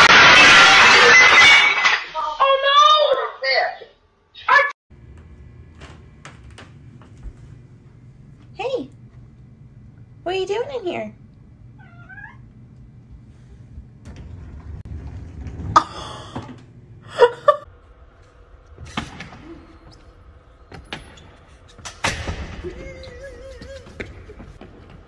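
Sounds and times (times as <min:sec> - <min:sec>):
cat meowing: 0:11.8 - 0:12.5.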